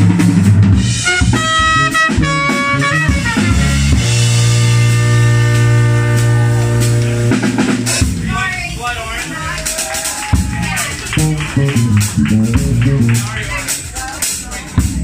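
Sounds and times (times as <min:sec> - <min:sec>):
electric bass: 0:00.0 - 0:08.4, 0:10.4 - 0:13.4
drum kit: 0:00.0 - 0:15.0
trumpet playing: 0:00.9 - 0:13.6.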